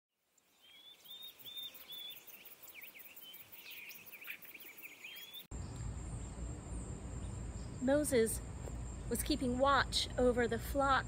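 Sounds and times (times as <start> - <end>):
birds singing and chirping: 0.5 - 10.8
high insect trill: 1.1 - 11.0
steady low rumble: 5.5 - 11.0.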